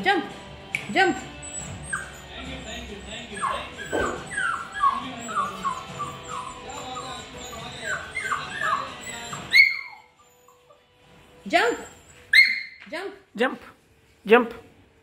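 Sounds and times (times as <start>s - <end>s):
puppy whining: 1.0s - 12.8s
puppy sharp cry: 1.2s - 10.7s, 11.6s - 12.8s.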